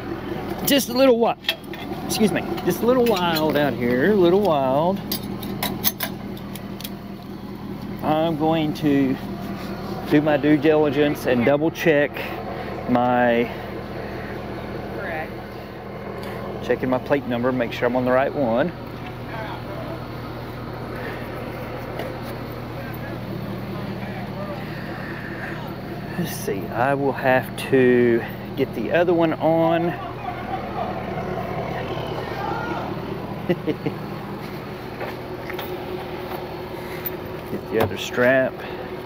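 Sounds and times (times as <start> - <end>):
truck engine idling: 0.0 - 39.0
faint voices: 16.6 - 20.2, 20.8 - 33.9.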